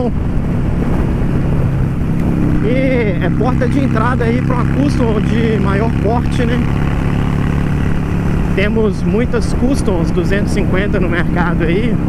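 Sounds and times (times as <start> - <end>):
motorcycle engine running: 0.0 - 12.0
wind rushing over microphone: 0.0 - 12.0.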